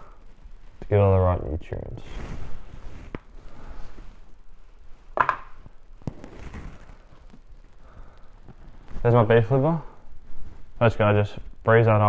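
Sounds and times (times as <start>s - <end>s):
knocks and thuds on counter: 5.2s - 5.5s.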